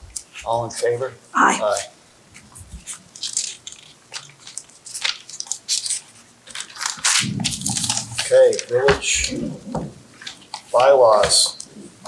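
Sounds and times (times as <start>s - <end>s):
papers rustling: 1.7s - 12.0s.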